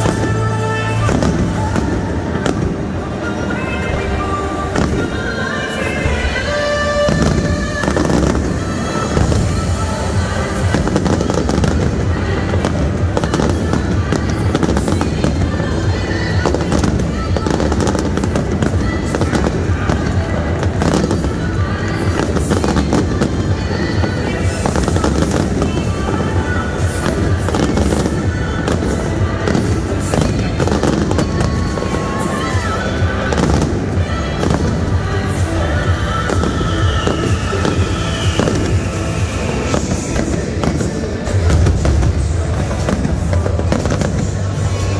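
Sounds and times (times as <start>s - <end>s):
fireworks bangs and crackles: 0.0s - 44.9s
music playing: 0.0s - 44.9s.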